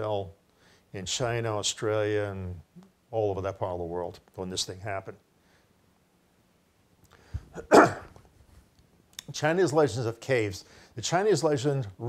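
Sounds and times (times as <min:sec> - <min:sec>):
man clearing his throat: 0:07.5 - 0:08.2.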